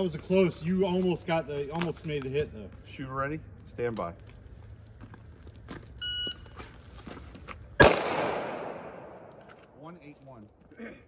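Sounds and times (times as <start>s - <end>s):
shot timer beep: 6.0s - 6.4s
rifle shot echoing: 7.8s - 9.8s.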